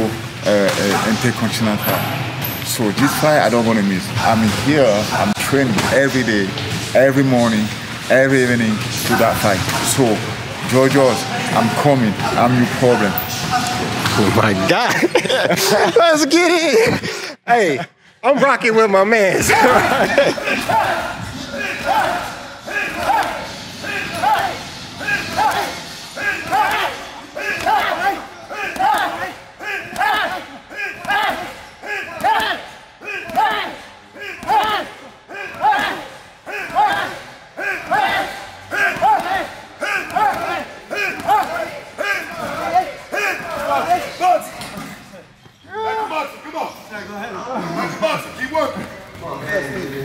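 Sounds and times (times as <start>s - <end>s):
voices: 0.0s - 50.0s.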